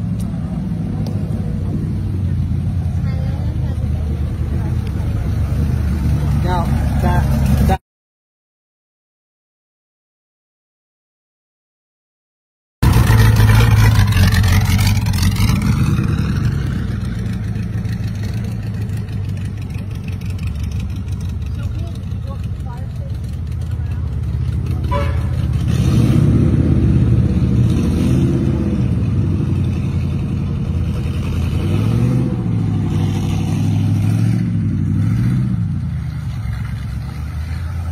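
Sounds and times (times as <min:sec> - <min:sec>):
racing car engine passing: 0:12.8 - 0:37.9.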